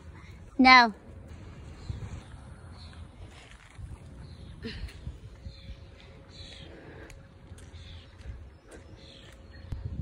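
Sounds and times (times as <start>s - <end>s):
birds chirping softly: 0.0s - 10.0s
steady low rumble: 0.0s - 10.0s.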